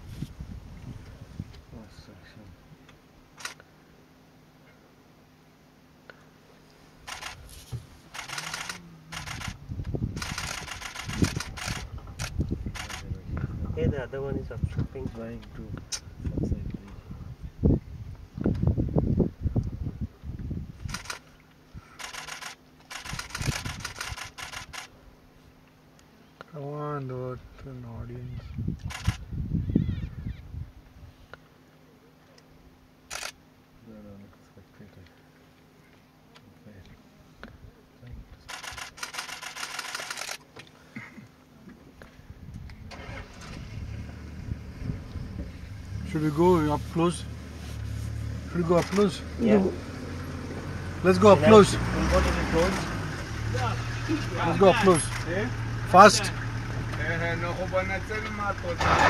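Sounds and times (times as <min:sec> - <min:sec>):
camera shutter rapid clicks: 0:03.4 - 0:03.6, 0:07.0 - 0:07.4, 0:08.1 - 0:09.6, 0:10.2 - 0:13.1, 0:20.8 - 0:21.2, 0:22.0 - 0:24.9, 0:28.8 - 0:29.2, 0:33.1 - 0:33.4, 0:38.5 - 0:40.4, 0:48.8 - 0:49.1
engine idling: 0:07.0 - 0:13.6, 0:21.9 - 0:24.9, 0:42.8 - 0:59.0
low thumps and rumbles: 0:43.7 - 0:46.5.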